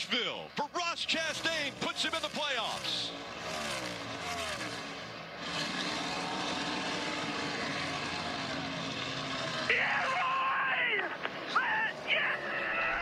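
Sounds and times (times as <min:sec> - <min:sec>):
engine drone of cars: 0:00.0 - 0:13.0
race car passing at speed: 0:02.8 - 0:09.7.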